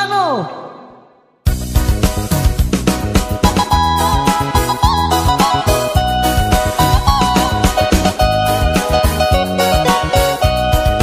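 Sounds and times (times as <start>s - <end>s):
dance music with strong beat: 1.5s - 11.0s.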